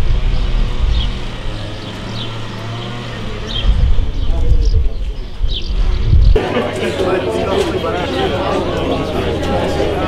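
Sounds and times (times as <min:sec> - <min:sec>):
low street hum: 0:00.0 - 0:10.0.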